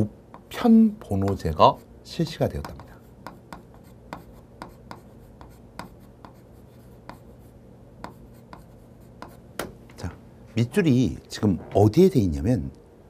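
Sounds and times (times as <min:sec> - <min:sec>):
chalk tapping and scratching on chalkboard: 0:00.3 - 0:09.7.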